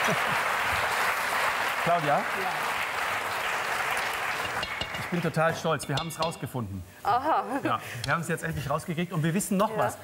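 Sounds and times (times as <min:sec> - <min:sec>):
audience applauding: 0:00.0 - 0:05.4.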